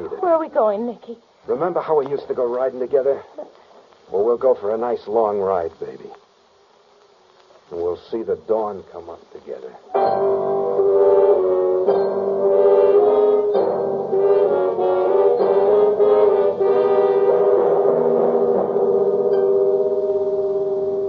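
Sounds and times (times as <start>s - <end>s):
dramatic sustained music chords: 10.0s - 21.0s.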